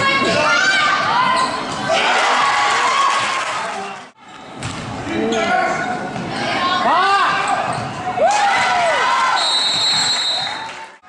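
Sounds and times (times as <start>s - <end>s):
voices of players and crowd: 0.0s - 11.0s
sneakers squeaking: 1.0s - 1.9s, 7.2s - 8.2s
ball bouncing on hardwood court: 4.6s - 4.9s.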